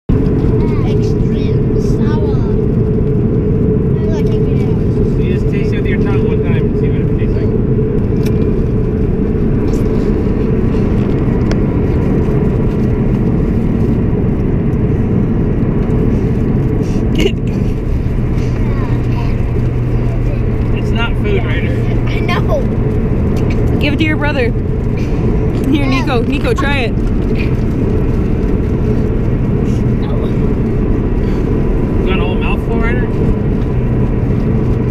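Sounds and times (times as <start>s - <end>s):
car road and engine rumble: 0.1s - 34.9s.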